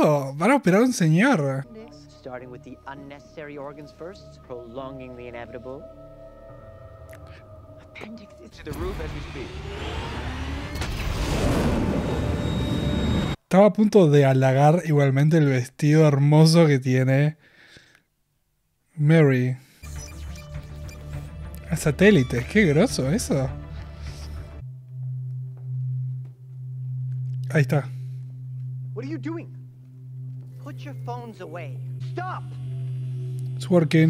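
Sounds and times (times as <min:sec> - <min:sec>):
low noisy rumble: 0:07.2 - 0:13.4
low electronic hum: 0:22.4 - 0:34.0.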